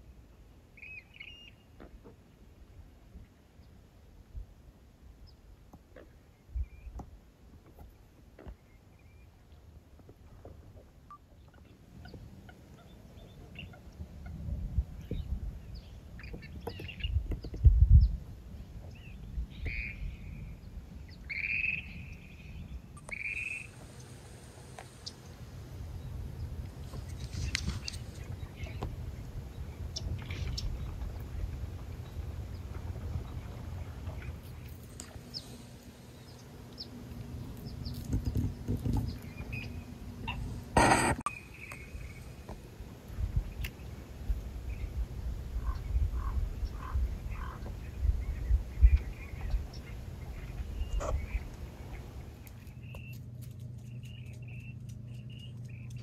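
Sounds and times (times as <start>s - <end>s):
bird calls: 11.1s - 14.4s, 15.0s - 18.2s, 18.8s - 42.5s, 45.6s - 53.2s
wind rumble on microphone: 12.0s - 23.1s, 25.4s - 35.3s, 42.0s - 52.4s.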